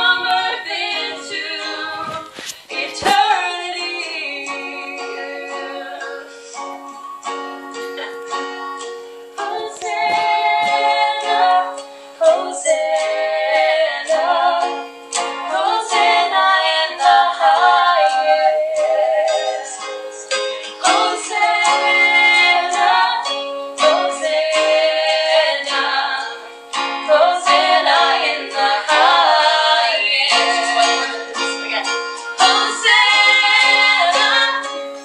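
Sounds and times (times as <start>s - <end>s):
women singing together: 0.0s - 6.7s, 9.4s - 35.0s
acoustic guitar strumming: 0.0s - 35.0s.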